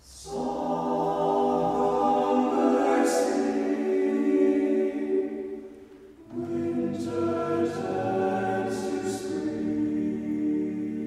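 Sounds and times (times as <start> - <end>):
a cappella group singing jazz: 0.1 - 11.0.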